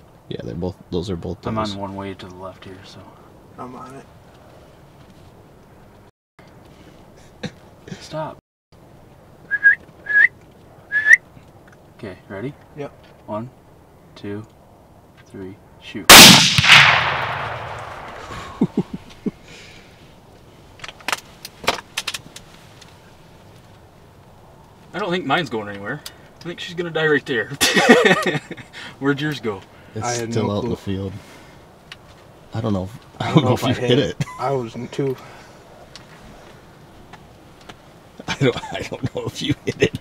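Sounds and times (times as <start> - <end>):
gunshot echo: 16.1 - 18.8
rifle shots: 16.1 - 18.8.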